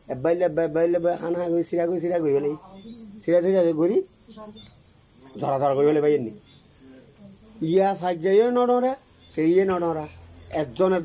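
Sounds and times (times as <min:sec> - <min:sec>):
crickets chirping: 0:00.0 - 0:11.0
man speaking: 0:00.1 - 0:02.6, 0:05.4 - 0:06.4, 0:07.6 - 0:11.0.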